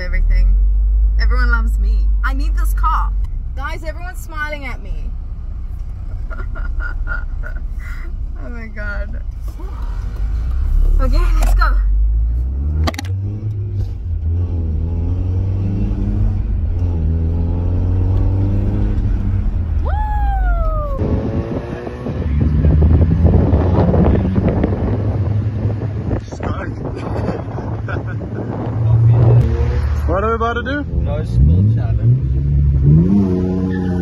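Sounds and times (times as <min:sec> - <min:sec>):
car engine accelerating: 0:00.0 - 0:34.0
road and wind noise: 0:00.0 - 0:34.0.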